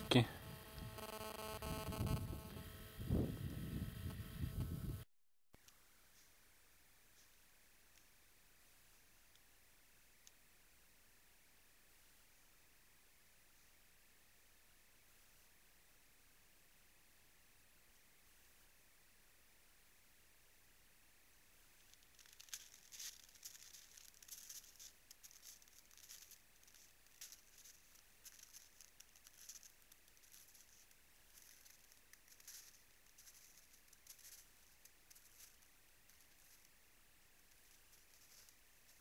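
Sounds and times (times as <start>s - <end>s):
steady camera hiss: 0.0s - 5.0s, 5.6s - 39.0s
hooves crunching in snow: 21.8s - 36.7s, 37.5s - 39.0s.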